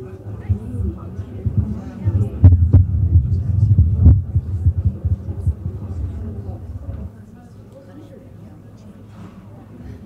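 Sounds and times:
low electrical hum: 0:00.0 - 0:09.0.

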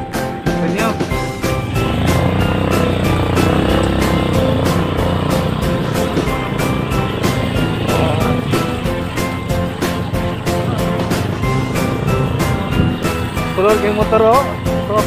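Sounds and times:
background music with held notes: 0:00.0 - 0:15.0
motorbike engine running: 0:00.0 - 0:15.0.

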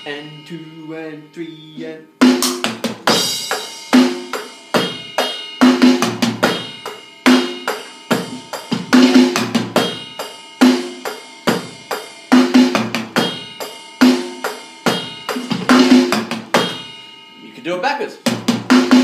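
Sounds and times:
electronic drum kit rock beat: 0:00.0 - 0:19.0.

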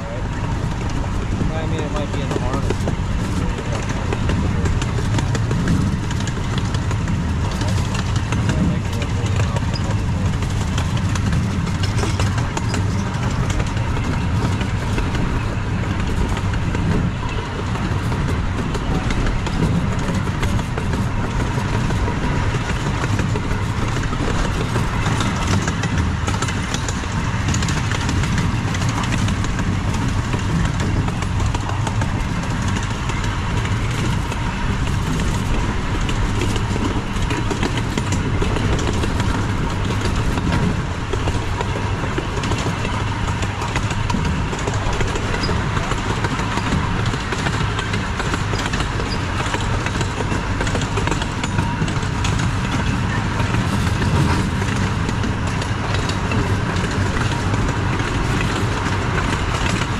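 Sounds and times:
train wheels rumbling on track: 0:00.0 - 0:59.9.

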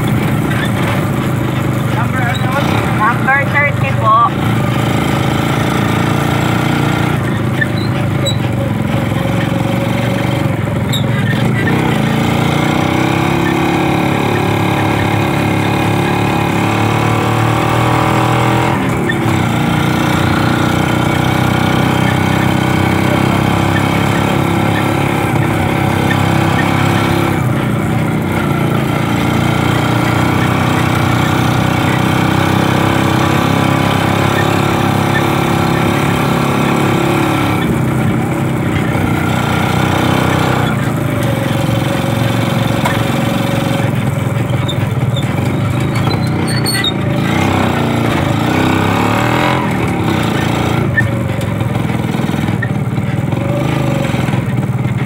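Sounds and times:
motorcycle engine running: 0:00.0 - 0:55.0.

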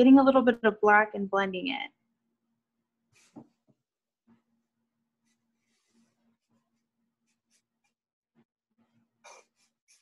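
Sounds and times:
faint scratchy strokes: 0:05.2 - 0:08.0.

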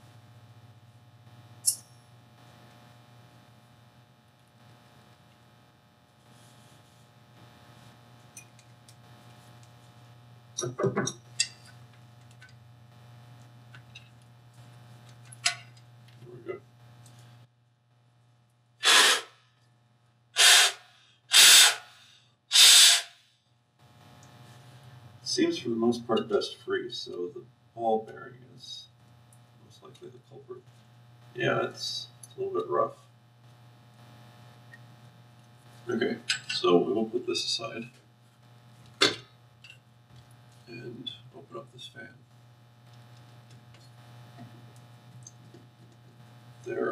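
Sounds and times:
steady low hum: 0:00.0 - 0:46.9
breath puffs into blower fan: 0:18.8 - 0:19.4, 0:20.4 - 0:23.2.

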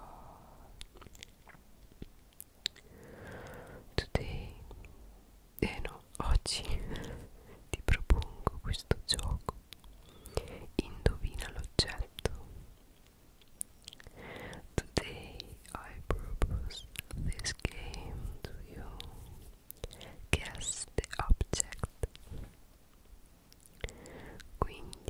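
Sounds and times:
mouth clicks: 0:00.8 - 0:03.7, 0:13.0 - 0:14.9
person whispering: 0:02.7 - 0:04.8, 0:05.6 - 0:12.7, 0:13.9 - 0:22.5, 0:23.7 - 0:25.0.

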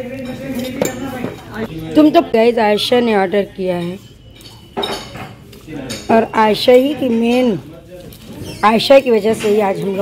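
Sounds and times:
cutlery and plates clinking: 0:00.0 - 0:10.0
faint background chatter: 0:00.0 - 0:10.0.

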